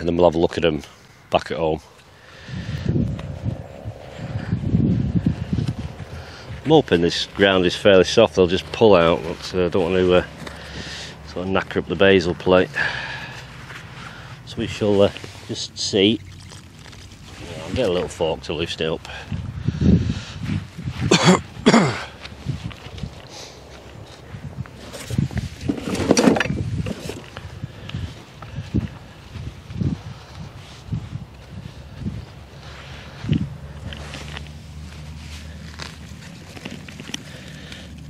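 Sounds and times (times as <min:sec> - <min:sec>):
steady low hum: 0:00.0 - 0:15.6
footsteps on straw-mulched path: 0:02.6 - 0:11.8, 0:20.0 - 0:25.6, 0:26.9 - 0:37.9.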